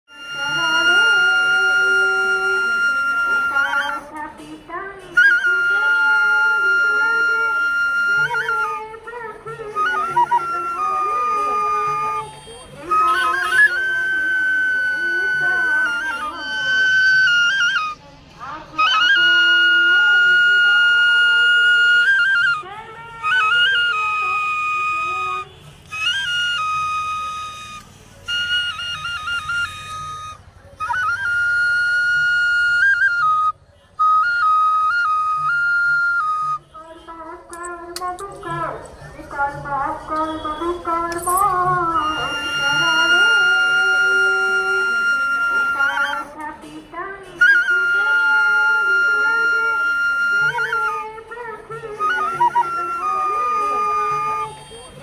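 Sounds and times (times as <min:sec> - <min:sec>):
bamboo flute melody: 0:00.0 - 0:04.4, 0:05.0 - 0:55.0.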